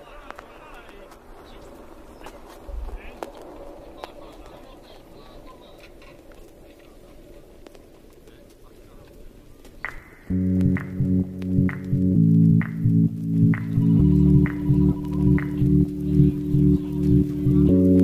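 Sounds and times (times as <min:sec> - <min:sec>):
faint voices talking: 0:00.0 - 0:11.8, 0:13.4 - 0:18.0.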